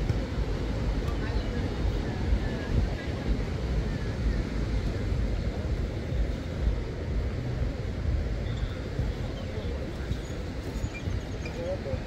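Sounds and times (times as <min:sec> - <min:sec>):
steady outdoor hiss: 0:00.0 - 0:12.0
wind buffeting microphone: 0:00.0 - 0:12.0.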